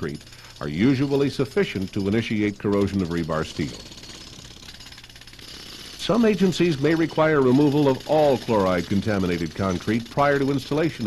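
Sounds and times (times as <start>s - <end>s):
jackhammer breaking concrete: 0.0s - 11.0s.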